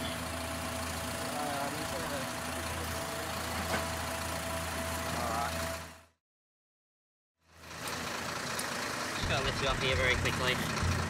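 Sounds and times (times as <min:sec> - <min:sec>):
vehicle engine idling: 0:00.0 - 0:06.1, 0:07.4 - 0:11.0.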